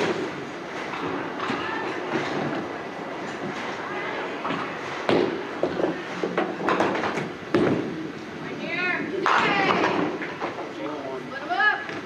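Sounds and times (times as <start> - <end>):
bowling balls rolling down lanes: 0.0 - 11.0.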